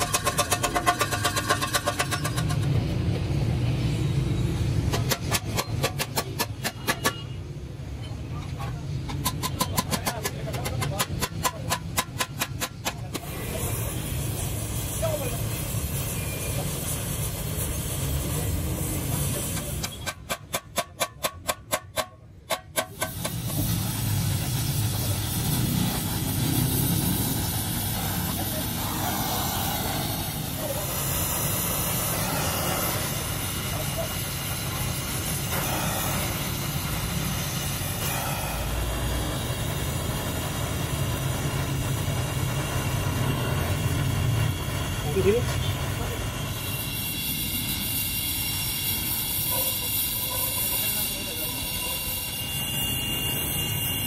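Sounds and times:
gas welding torch hissing: 0:00.0 - 0:08.0, 0:08.8 - 0:54.0.

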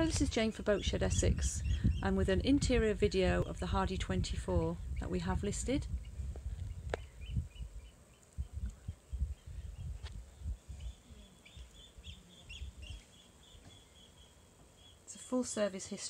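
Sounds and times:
bird chirping: 0:00.0 - 0:03.6, 0:04.8 - 0:15.3
low rumbling: 0:00.0 - 0:13.0.

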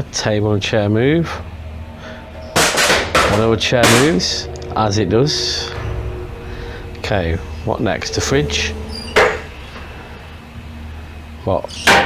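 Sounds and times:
low steady hum: 0:00.0 - 0:11.5.

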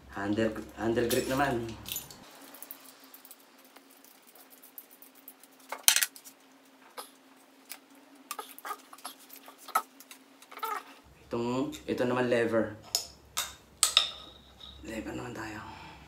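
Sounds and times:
faint hum: 0:00.0 - 0:16.0.

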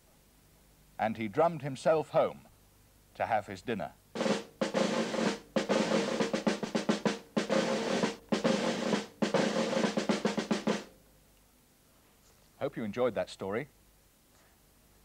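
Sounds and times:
drum rolls with sticks: 0:04.2 - 0:10.9.

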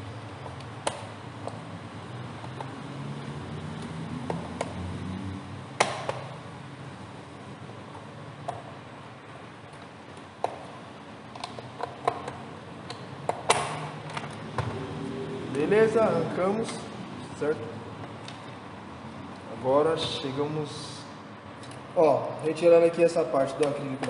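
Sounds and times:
plastic latches clicking and snapping: 0:11.3 - 0:14.4.

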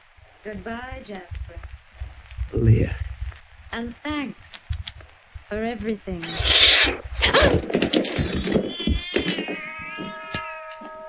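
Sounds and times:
cat yowling and screeching: 0:06.2 - 0:11.0.

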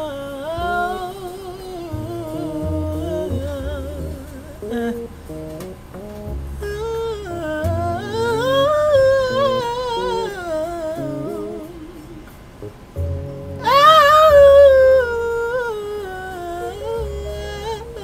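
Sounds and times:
low bass music: 0:00.0 - 0:18.0
man humming: 0:00.0 - 0:18.0.

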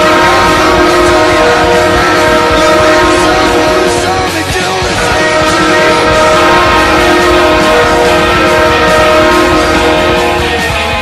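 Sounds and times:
goal horn blowing steady chord: 0:00.0 - 0:11.0.

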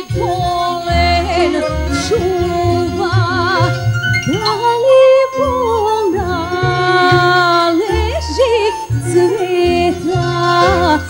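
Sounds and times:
band with steady bass: 0:00.0 - 0:11.0
woman singing folk song: 0:00.0 - 0:11.0.

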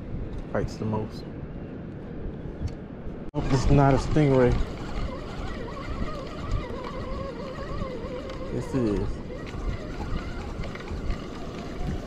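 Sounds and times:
fishing reel gears whining: 0:03.4 - 0:12.0.

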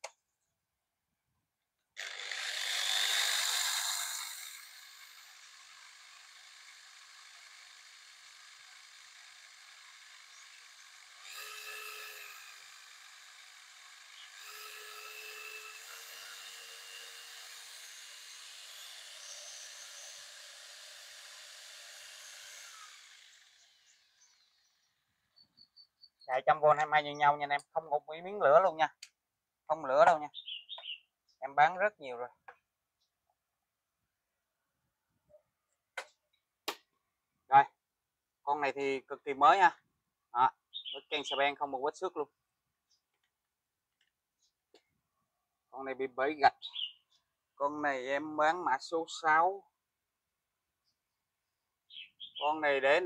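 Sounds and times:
electric polisher motor whine: 0:11.2 - 0:12.5.

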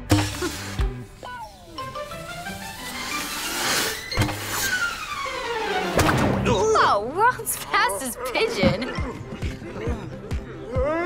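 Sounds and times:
hissing whoosh: 0:00.1 - 0:06.1
falling whistle-like glides: 0:01.2 - 0:06.1.

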